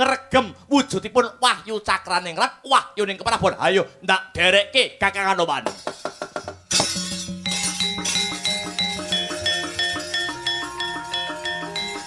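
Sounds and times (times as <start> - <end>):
gamelan metallophones struck: 6.7 - 12.0.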